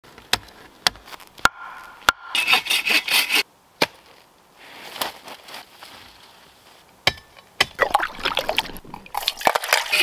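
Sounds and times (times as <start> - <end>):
hand saw rasping through wood: 2.3 - 3.4.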